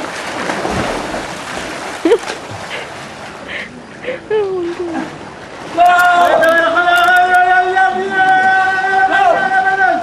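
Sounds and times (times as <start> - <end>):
pool water splashing: 0.0 - 10.0.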